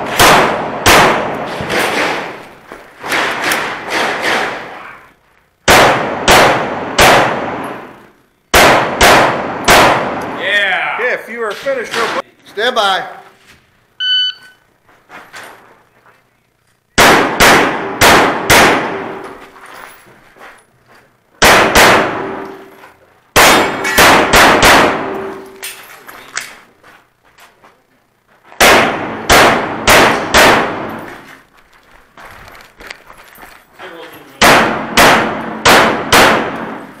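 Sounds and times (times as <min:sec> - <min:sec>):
shot timer beep: 0:14.0 - 0:14.6
handgun shots echoing indoors: 0:23.4 - 0:25.6, 0:28.6 - 0:31.2, 0:34.4 - 0:37.0.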